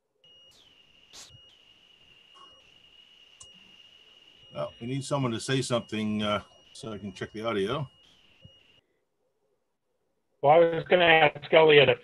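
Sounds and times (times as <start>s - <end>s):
faint high-pitched whine: 0.2s - 9.0s.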